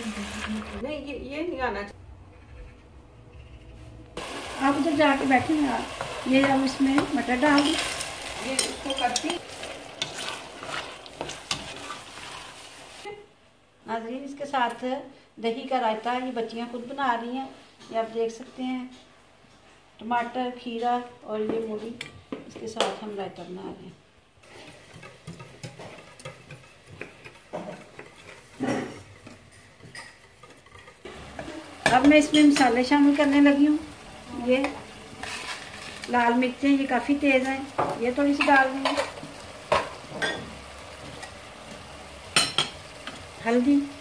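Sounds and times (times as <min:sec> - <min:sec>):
peas sizzling in a pan: 0:00.0 - 0:00.8, 0:04.2 - 0:13.2, 0:24.4 - 0:26.1, 0:31.0 - 0:44.0
spatula scraping a pan: 0:05.2 - 0:13.1, 0:24.4 - 0:32.6, 0:35.1 - 0:36.2.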